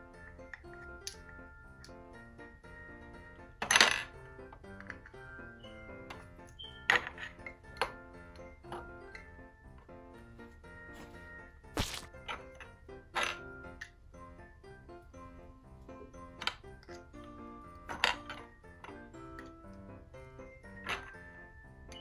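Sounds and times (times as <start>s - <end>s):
christmas background music: 0.0s - 22.0s
plastic pegs clattering: 0.4s - 2.0s, 3.5s - 5.3s, 6.0s - 9.2s, 11.8s - 14.0s, 16.3s - 19.8s, 20.7s - 22.0s.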